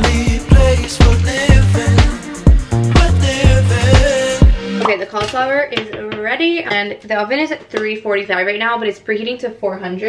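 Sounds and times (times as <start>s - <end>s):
woman speaking: 4.8s - 10.0s.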